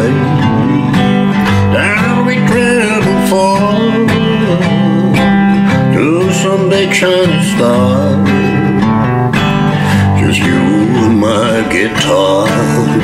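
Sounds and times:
man singing country song: 0:00.0 - 0:13.0
strummed acoustic guitar: 0:00.0 - 0:13.0.

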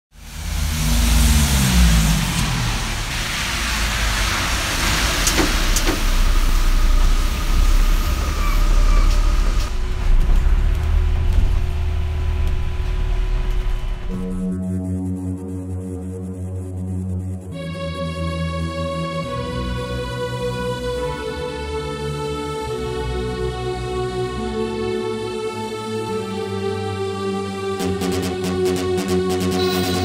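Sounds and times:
street traffic: 0:00.1 - 0:14.1
heavy vehicle engine rumbling: 0:00.2 - 0:14.1.

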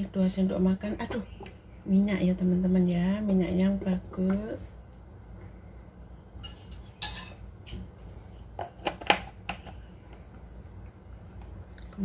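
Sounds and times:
utensils clinking on metal bowl: 0:06.4 - 0:07.4.

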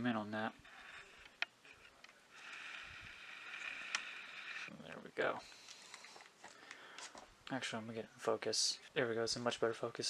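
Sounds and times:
lens zoom motor whirring: 0:02.3 - 0:04.7.

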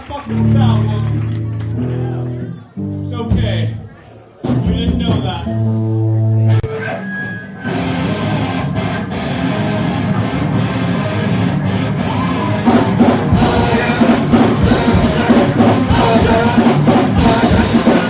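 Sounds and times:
hardcore punk band playing live: 0:04.4 - 0:18.0.

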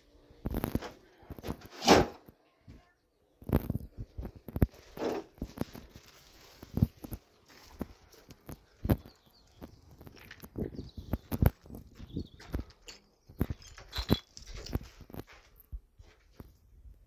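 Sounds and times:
footsteps on rubble-strewn concrete: 0:03.4 - 0:16.6.

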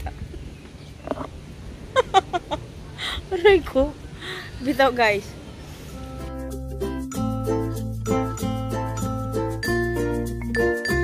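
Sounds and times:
woman's stifled laugh: 0:01.9 - 0:03.3.

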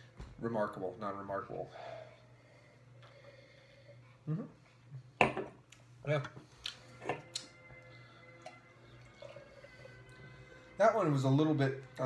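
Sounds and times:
beer pouring into glass: 0:08.2 - 0:11.2.

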